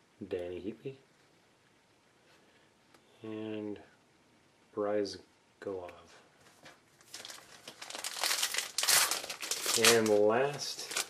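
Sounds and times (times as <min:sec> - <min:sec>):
wrapper crinkling: 0:07.0 - 0:11.0.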